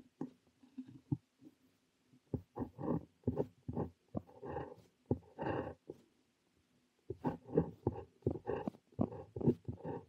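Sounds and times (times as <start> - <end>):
pen nib scratching on paper: 2.3 - 6.0, 7.1 - 10.0.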